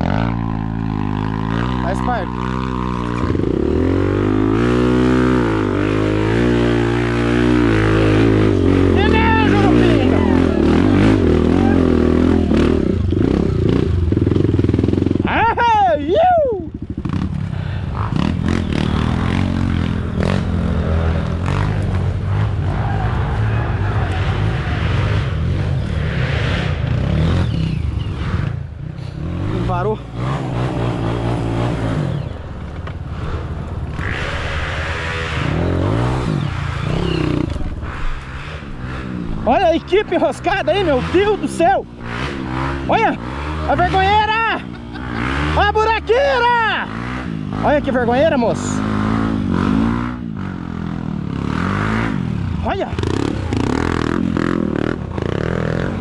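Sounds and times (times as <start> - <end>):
dirt bike engine revving: 0.0 - 16.1, 16.7 - 56.0.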